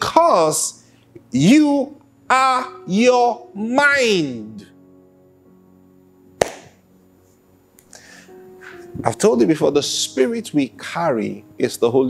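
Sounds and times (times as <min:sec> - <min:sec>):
soft background music chords: 0:00.0 - 0:12.0
sharp tap: 0:06.4 - 0:06.8.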